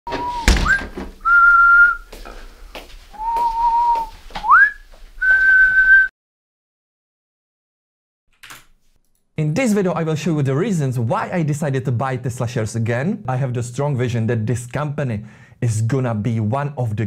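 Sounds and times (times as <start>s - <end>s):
thump: 0.1s - 1.2s
man whistling: 0.1s - 2.1s, 3.2s - 6.1s.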